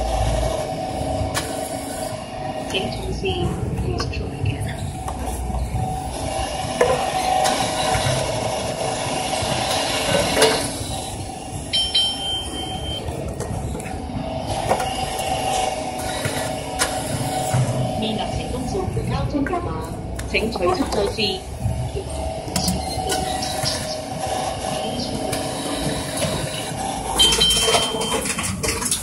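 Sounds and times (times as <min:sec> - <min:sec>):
mechanical hum and rumble: 0:00.0 - 0:29.0
short high electronic beep: 0:11.7 - 0:13.1, 0:27.2 - 0:28.2.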